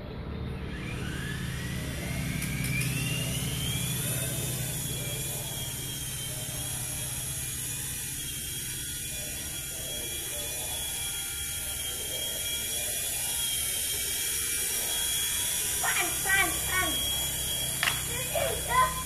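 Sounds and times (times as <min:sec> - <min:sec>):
low hum: 0:00.0 - 0:19.0
rc helicopter motor whine: 0:00.0 - 0:19.0.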